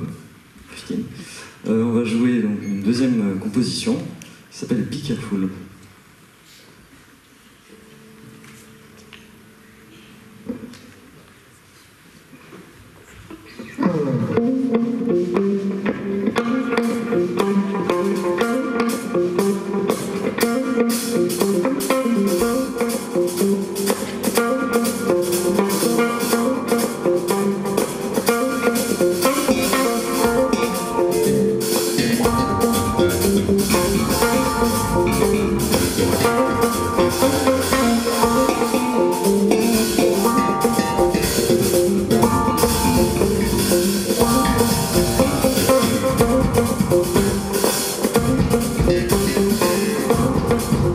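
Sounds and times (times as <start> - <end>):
electric guitar melody: 13.7 - 50.9
electric bass: 16.5 - 50.9
drum kit and cymbals: 16.8 - 50.9.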